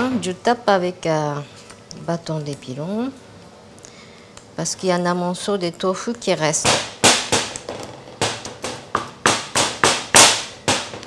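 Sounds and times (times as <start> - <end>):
wooden pestle pounding batter: 6.5 - 11.0.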